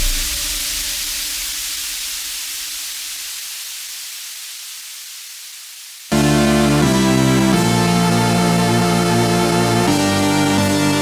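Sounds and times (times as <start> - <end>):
synthesized white noise: 0.0 - 11.0.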